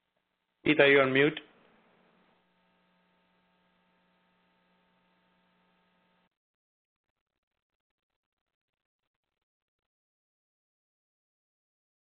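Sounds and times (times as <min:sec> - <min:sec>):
faint telephone line hum: 0:00.7 - 0:06.3.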